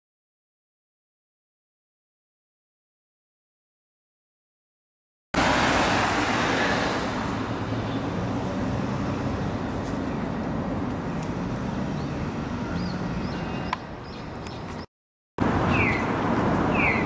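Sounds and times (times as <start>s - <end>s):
road traffic with engine hum: 5.4s - 17.0s.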